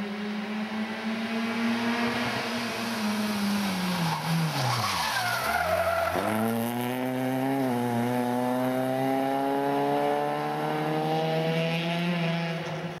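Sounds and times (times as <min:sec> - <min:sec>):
car engine accelerating: 0:00.0 - 0:13.0.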